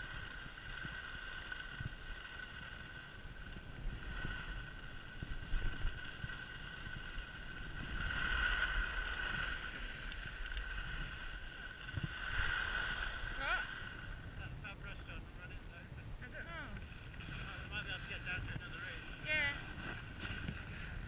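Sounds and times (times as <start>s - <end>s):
board sliding over snow: 0.0s - 14.5s, 16.5s - 21.0s
wind rumbling on microphone: 0.0s - 21.0s.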